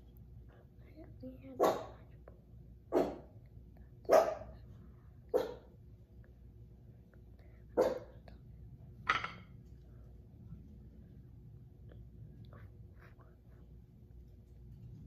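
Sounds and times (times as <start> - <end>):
dog barking: 1.6 - 2.0, 2.9 - 3.4, 4.1 - 4.6, 5.3 - 5.7, 7.8 - 8.2.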